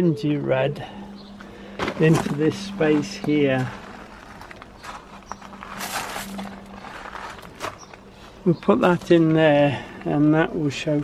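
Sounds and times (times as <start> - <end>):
scraping compost: 0.5 - 9.6
hands rustling plant foliage: 1.4 - 9.4.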